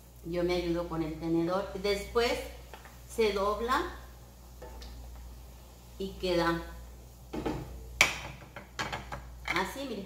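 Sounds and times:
utensils knocking on frying pan: 7.3s - 9.7s.

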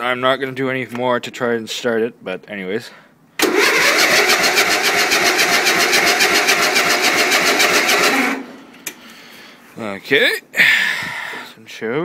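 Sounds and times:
electric starter cranking engine: 3.4s - 8.5s.

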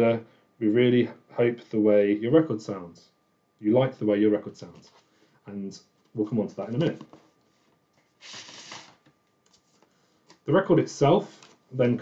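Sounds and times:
record sliding out of paper sleeve: 8.2s - 9.1s.

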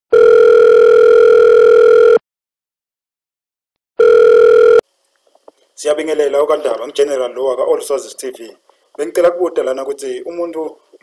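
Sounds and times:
electronic ringback tone: 0.1s - 2.2s, 4.0s - 4.8s.

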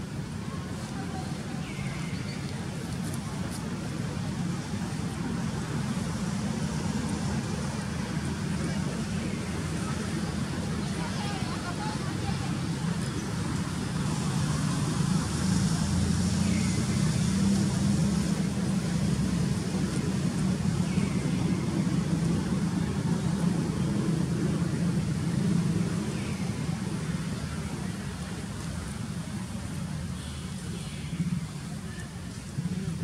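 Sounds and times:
motor vehicle rumble: 0.0s - 33.0s.

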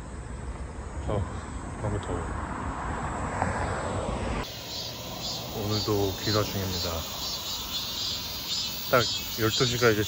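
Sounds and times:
vehicle driving past: 2.1s - 9.7s.

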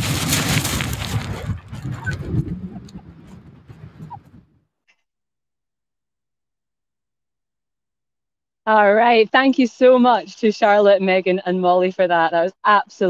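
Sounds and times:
footsteps crunching on shingle: 0.0s - 1.8s
wind buffeting microphone: 0.0s - 4.6s.

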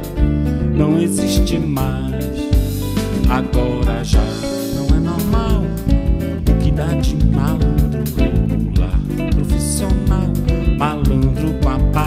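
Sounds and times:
drum and percussion hits: 1.4s - 12.0s.

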